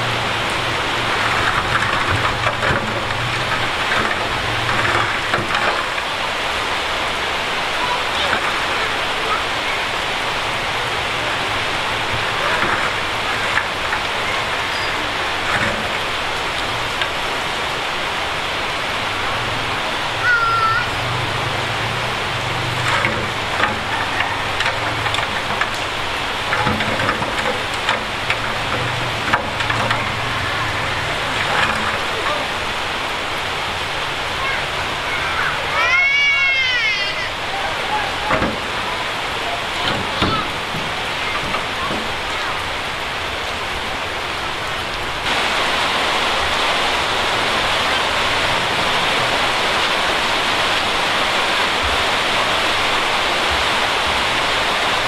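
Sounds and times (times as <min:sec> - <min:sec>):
diesel engines running: 0:00.0 - 0:55.0
steady hiss: 0:00.0 - 0:55.0
small knocks: 0:00.3 - 0:06.2, 0:11.6 - 0:17.3, 0:20.9 - 0:32.9, 0:38.0 - 0:42.6.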